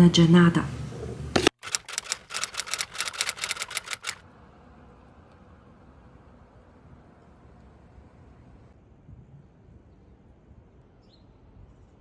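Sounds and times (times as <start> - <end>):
typewriter key clicks: 1.6 - 4.2.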